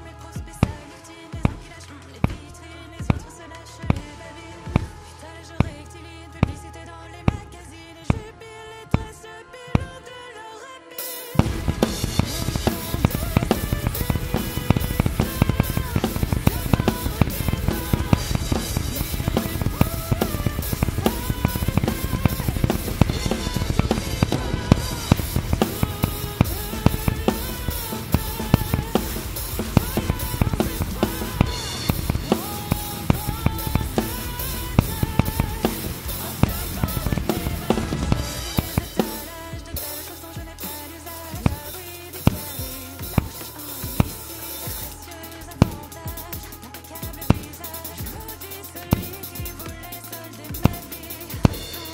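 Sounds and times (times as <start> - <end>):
acoustic drum kit beat: 0.0 - 6.8, 11.0 - 51.9
nu-metal backing track: 0.0 - 10.4, 11.0 - 51.9.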